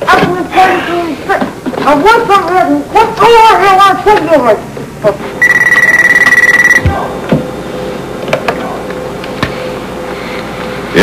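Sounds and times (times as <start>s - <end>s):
electronic telephone ringing: 5.4s - 6.9s.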